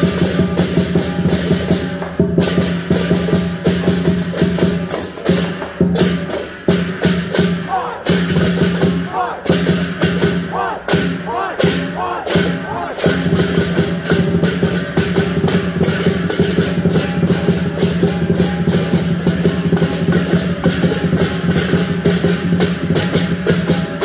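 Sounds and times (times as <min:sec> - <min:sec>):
brass hand cymbals clashing: 0:00.0 - 0:24.0.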